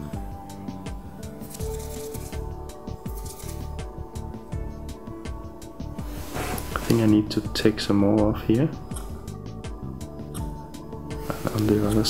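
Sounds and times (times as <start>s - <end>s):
background music: 0.0s - 12.0s
small scissors snipping: 1.4s - 2.4s, 3.2s - 3.7s.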